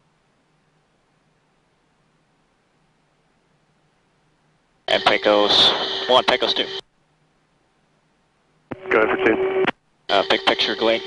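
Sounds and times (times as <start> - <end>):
faint hiss and low hum: 0.0 - 11.0
man speaking over radio: 4.9 - 6.8, 8.8 - 9.4, 10.1 - 11.0.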